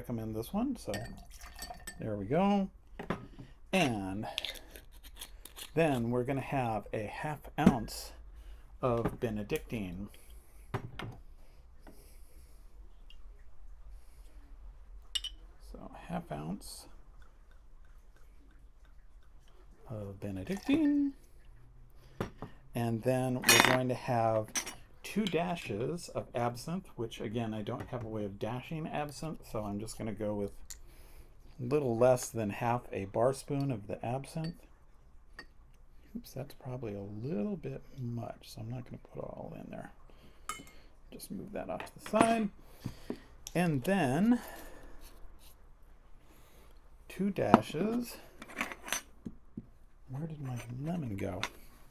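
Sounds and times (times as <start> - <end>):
glass bottle handling: 0.8 - 2.1, 15.2 - 15.4, 20.4 - 21.1, 41.8 - 43.2.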